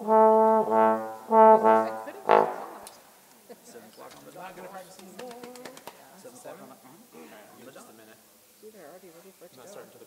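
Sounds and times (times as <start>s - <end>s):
soft low brass note: 0.0s - 3.0s.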